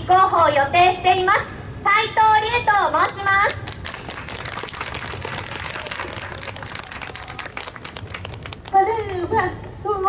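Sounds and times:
crowd applause: 3.7 - 8.8.

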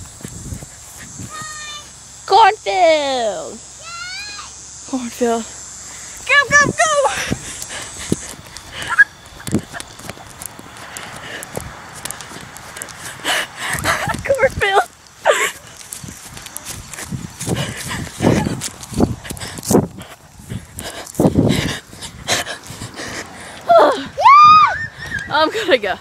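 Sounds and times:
footfalls in a cornfield: 0.0 - 1.8, 6.2 - 23.0
children panting: 0.4 - 1.9, 5.8 - 25.8
wavering high cry: 1.2 - 1.9, 23.7 - 25.3
children laughing: 6.8 - 10.4, 12.6 - 19.5, 21.5 - 26.0
rustling: 7.3 - 23.0
children shouting: 23.7 - 25.2.

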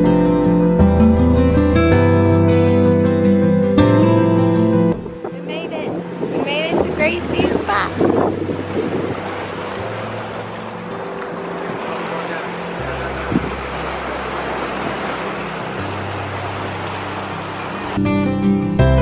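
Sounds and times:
soft background music: 0.0 - 19.0
wind on microphone: 4.8 - 10.6, 12.8 - 17.9
waves washing against rocks: 5.7 - 18.2.

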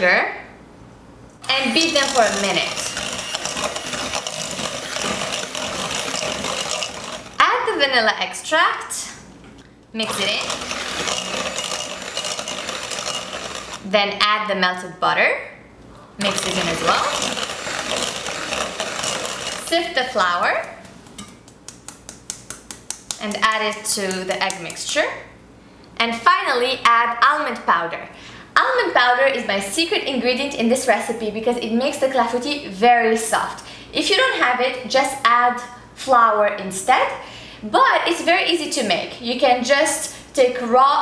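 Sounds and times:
electric hand mixer whisking: 1.5 - 7.4, 10.0 - 13.9, 16.2 - 19.9.

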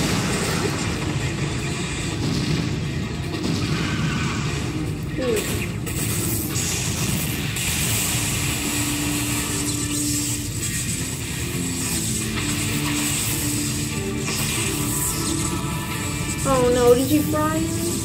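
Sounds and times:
film music with long held notes: 0.0 - 18.0
rumble of sound effects: 0.0 - 18.0.

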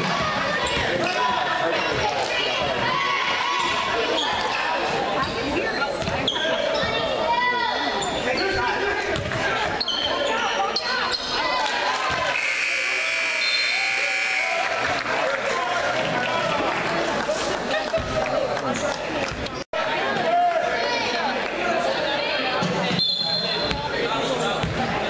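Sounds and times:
voices in gym: 0.0 - 25.0
scoreboard buzzer: 12.3 - 14.6.

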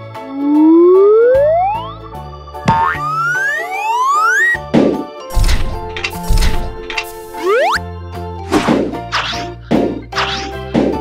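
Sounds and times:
children's background music: 0.0 - 11.0
rising whistle swoop: 3.0 - 4.6, 7.4 - 7.8.

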